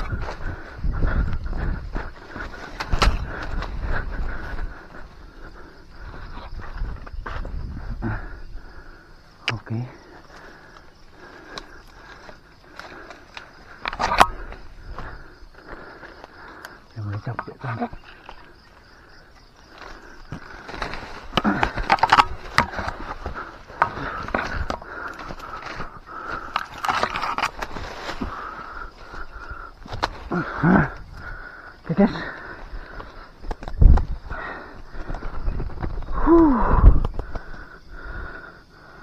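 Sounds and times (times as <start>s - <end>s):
undergrowth rustling and snapping: 0.0s - 7.6s, 10.2s - 37.7s
insect drone: 0.0s - 39.0s
breathy grunts: 7.8s - 33.4s, 34.2s - 35.4s, 36.0s - 39.0s.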